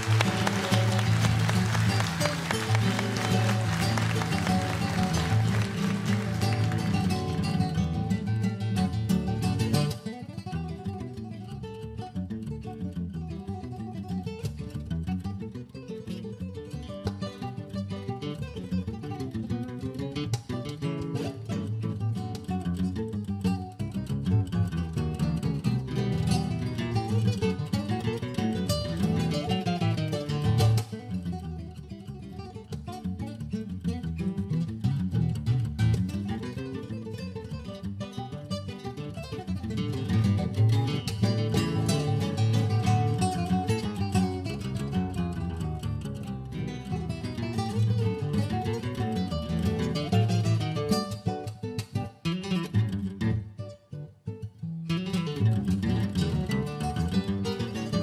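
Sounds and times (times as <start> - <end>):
classical guitars playing duet: 0.0 - 58.0.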